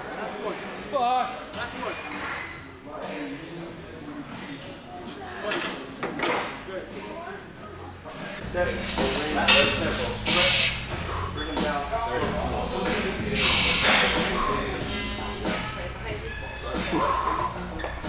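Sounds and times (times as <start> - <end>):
indistinct men's talk: 8.4 - 15.4
loud breathy hiss: 10.1 - 11.2, 13.3 - 14.3.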